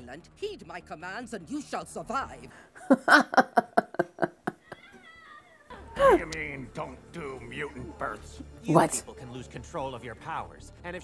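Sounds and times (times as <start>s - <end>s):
woman laughing: 2.8s - 5.0s.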